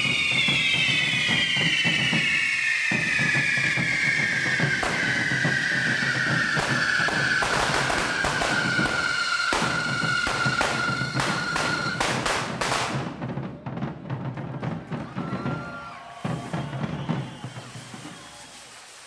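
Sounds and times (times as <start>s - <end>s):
fireworks hissing and whistling: 0.0s - 13.2s, 15.0s - 19.0s
firecracker bangs: 0.0s - 18.9s.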